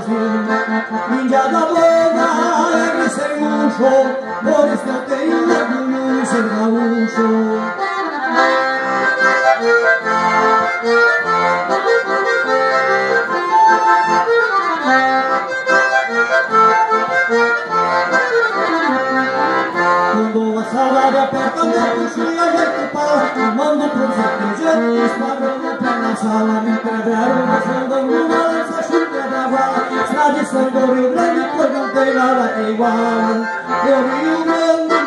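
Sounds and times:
accordion playing: 0:00.0 - 0:35.0.

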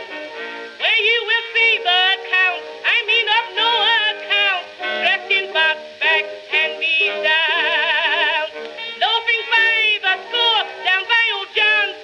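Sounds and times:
orchestra accompaniment: 0:00.0 - 0:00.9
woman singing blues: 0:00.8 - 0:12.0.

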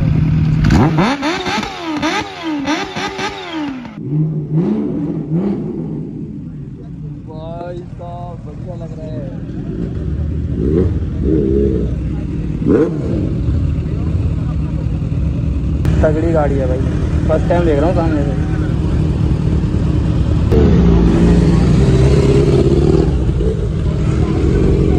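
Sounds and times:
motorcycle engine revving: 0:00.0 - 0:07.2, 0:08.5 - 0:24.9
people talking: 0:06.4 - 0:19.7, 0:20.5 - 0:24.9
engine idling: 0:06.4 - 0:24.9.

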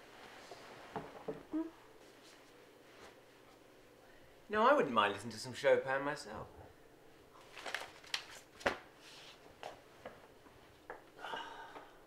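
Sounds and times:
magazine paper rustling: 0:07.4 - 0:09.4.

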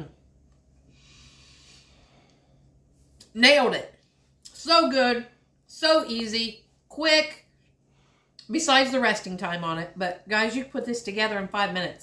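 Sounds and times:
woman breathing out through nose: 0:00.9 - 0:02.6.

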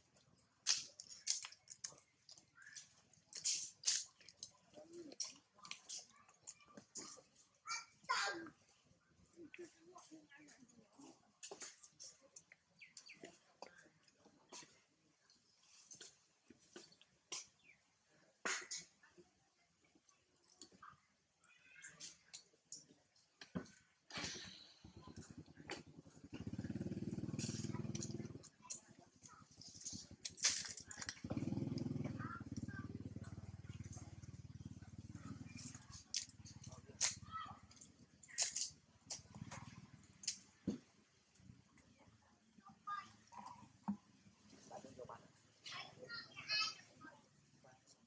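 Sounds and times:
small engine running: 0:24.8 - 0:30.4, 0:31.0 - 0:40.2.

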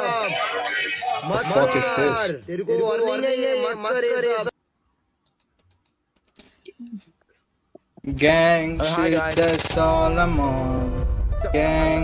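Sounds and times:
man's voice: 0:00.0 - 0:04.5, 0:08.0 - 0:12.0
faint clicks: 0:05.2 - 0:06.5.

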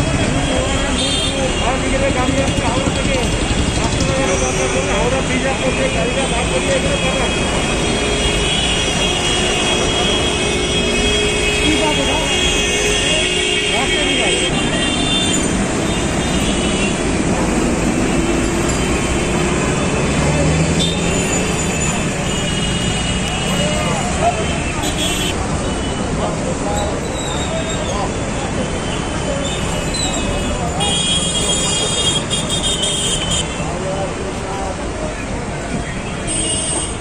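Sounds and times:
people's voices and calls: 0:00.0 - 0:37.0
street traffic: 0:00.0 - 0:37.0.

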